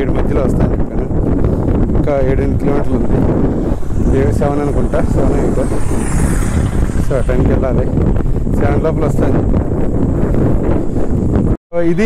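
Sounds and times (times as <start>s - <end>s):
wind buffeting microphone: 0.0s - 12.0s
vehicle passing with tyre hiss: 3.4s - 7.6s.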